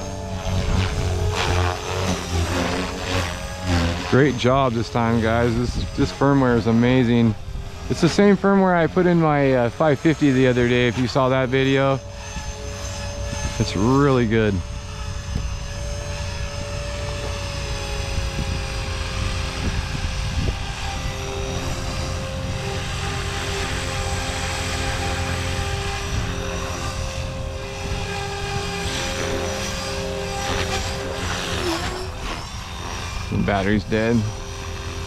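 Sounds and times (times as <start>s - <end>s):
electric helicopter rotor whine: 0.0s - 35.0s.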